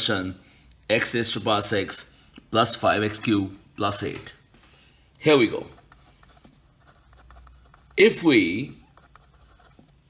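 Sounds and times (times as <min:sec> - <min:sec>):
pen scratching on paper: 0:05.5 - 0:10.0.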